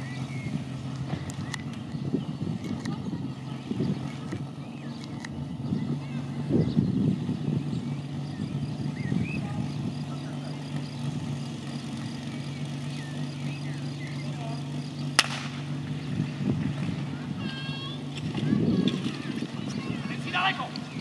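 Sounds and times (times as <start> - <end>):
small pump engine idling: 0.0 - 21.0
sharp crack: 15.1 - 15.8.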